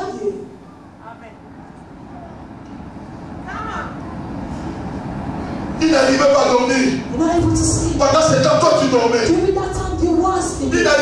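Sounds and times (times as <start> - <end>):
low room rumble: 0.0 - 11.0
man speaking into microphone: 5.8 - 7.0, 8.0 - 9.3.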